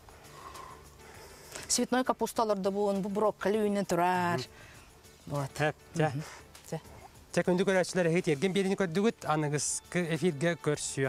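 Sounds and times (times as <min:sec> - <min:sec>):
person speaking: 0:01.7 - 0:04.5.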